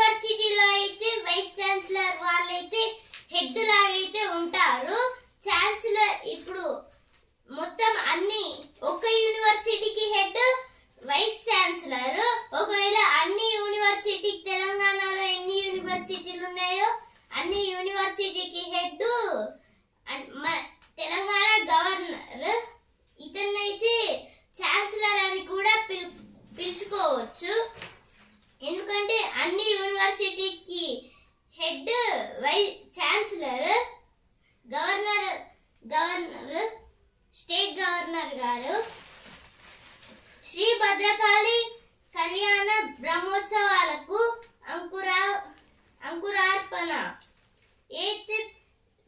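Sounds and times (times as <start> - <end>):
child speaking sing-song: 0.0 - 6.8, 7.5 - 19.5.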